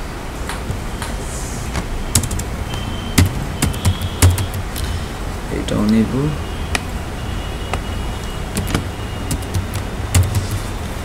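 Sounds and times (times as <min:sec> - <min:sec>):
background hiss: 0:00.0 - 0:11.0
keyboard key clicks: 0:02.2 - 0:02.5, 0:03.2 - 0:04.8, 0:08.6 - 0:10.7.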